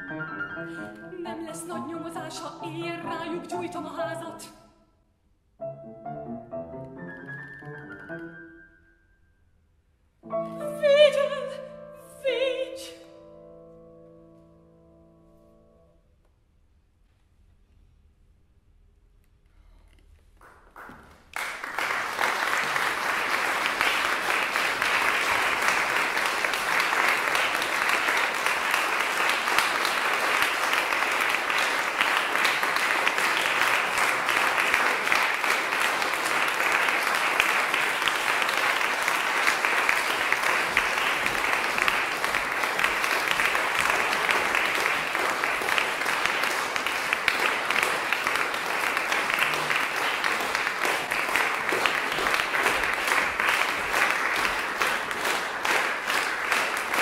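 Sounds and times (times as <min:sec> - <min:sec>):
audience applauding: 0:20.4 - 0:57.0.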